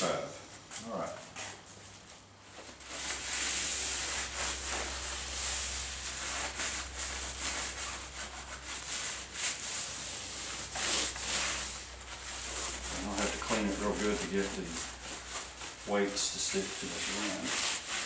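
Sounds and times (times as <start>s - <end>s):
cloth rag wiping wheel rim: 1.3s - 18.0s.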